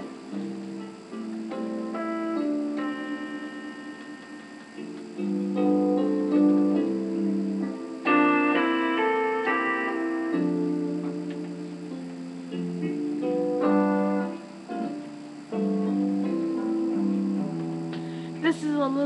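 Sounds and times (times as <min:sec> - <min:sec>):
solo piano chords: 0:00.0 - 0:19.0.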